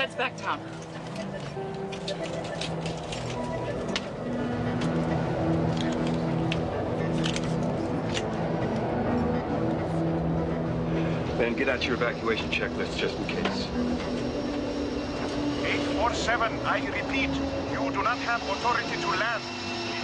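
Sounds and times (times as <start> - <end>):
airliner rumble: 0.0 - 20.0
dramatic film score: 0.0 - 20.0.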